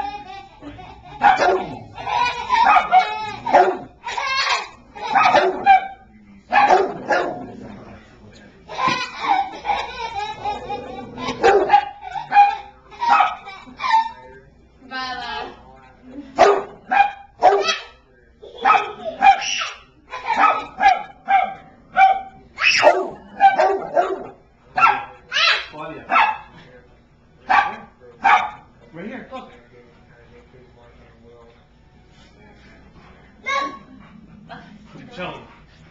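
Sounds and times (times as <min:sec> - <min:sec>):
dog barking: 0:01.2 - 0:01.8, 0:02.6 - 0:03.9, 0:05.1 - 0:07.5, 0:11.4 - 0:13.4, 0:16.4 - 0:17.9, 0:18.6 - 0:19.6, 0:20.3 - 0:25.1, 0:26.1 - 0:26.5, 0:27.5 - 0:28.7.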